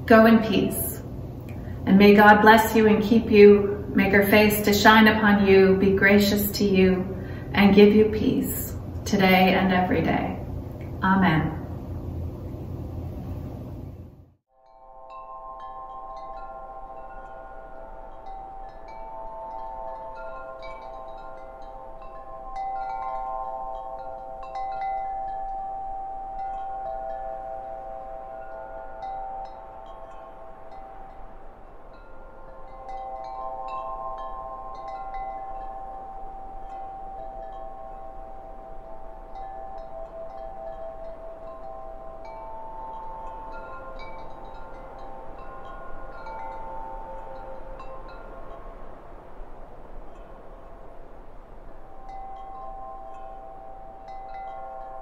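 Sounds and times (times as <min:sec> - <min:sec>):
wind chimes ringing: 0:00.0 - 0:11.2, 0:14.5 - 0:55.0.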